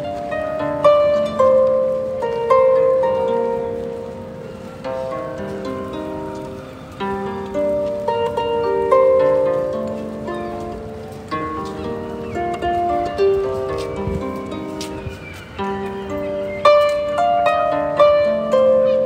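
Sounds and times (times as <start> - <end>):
harp melody plucked: 0.0 - 19.0.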